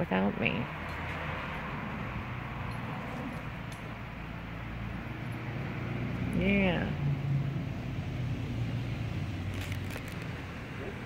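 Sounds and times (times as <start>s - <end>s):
engine humming: 0.0s - 11.0s
outdoor background noise: 0.0s - 11.0s.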